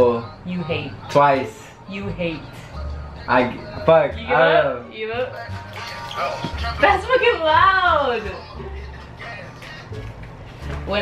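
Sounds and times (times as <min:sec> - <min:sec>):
guitar music leaking from headphones: 0:02.4 - 0:11.0.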